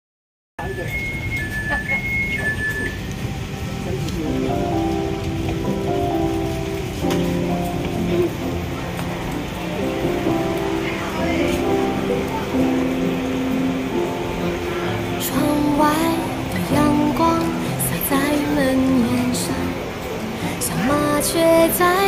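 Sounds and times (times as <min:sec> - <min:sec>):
two-tone electronic chime: 0:00.6 - 0:03.1
chatter of passengers: 0:00.6 - 0:22.0
train carriage rumble: 0:00.6 - 0:22.0
background music: 0:02.1 - 0:22.0.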